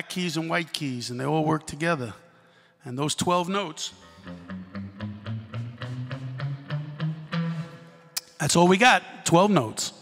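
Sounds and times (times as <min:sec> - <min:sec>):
electric guitar picking a scale run: 0:03.9 - 0:08.2.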